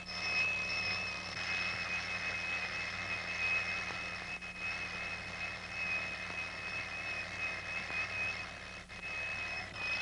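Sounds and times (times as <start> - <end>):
mechanical alarm clock ringing: 0.0 - 10.0.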